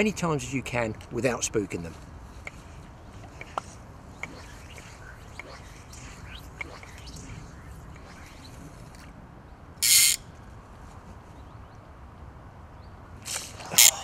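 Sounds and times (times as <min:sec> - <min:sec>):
fishing line swish: 0:02.3 - 0:09.2
fishing line ticks: 0:02.4 - 0:09.2.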